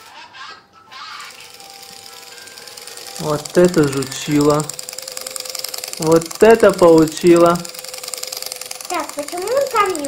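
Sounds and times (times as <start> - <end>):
toy electric motor whirring: 0.9 - 10.0.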